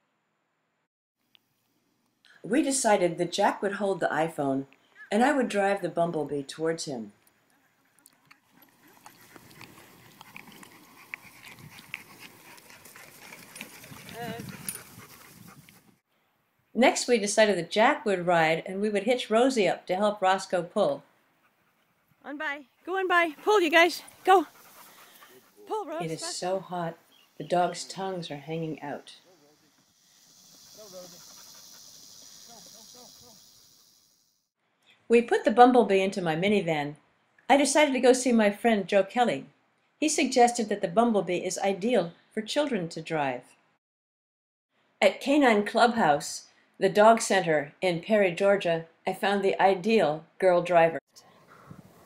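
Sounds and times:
dogs panting: 0:07.2 - 0:16.0, 0:21.4 - 0:29.4, 0:30.4 - 0:33.4, 0:51.4 - 0:52.0
wagon wheels rolling with clicks: 0:08.4 - 0:15.2.

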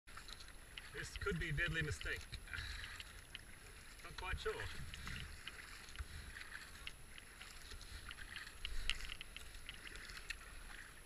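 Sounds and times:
paddle strokes in water: 0:00.1 - 0:11.0
wind rumble on microphone: 0:04.2 - 0:08.4.

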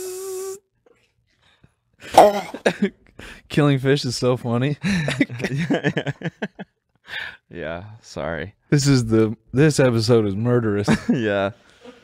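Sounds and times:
man imitating a table saw: 0:00.0 - 0:00.6.

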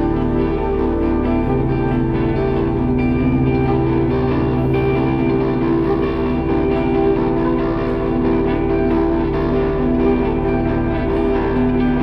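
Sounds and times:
held chord: 0:00.0 - 0:12.0
saxophone playing: 0:00.0 - 0:12.0.

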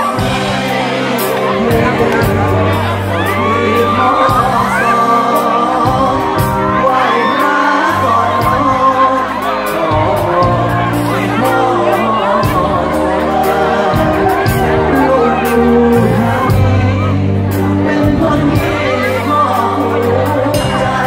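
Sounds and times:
bass notes: 0:00.0 - 0:21.0
crowd voices: 0:00.0 - 0:21.0
live band through speakers: 0:00.0 - 0:21.0
man singing: 0:00.0 - 0:21.0.

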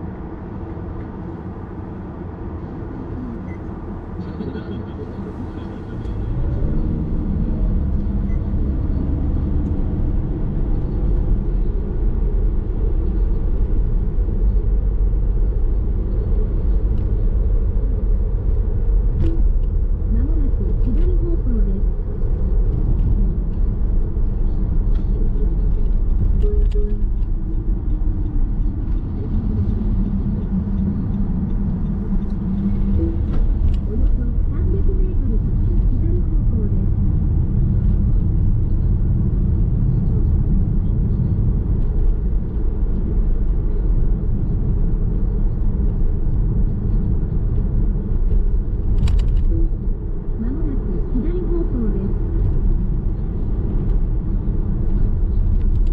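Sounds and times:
car interior road rumble: 0:00.0 - 0:55.9.

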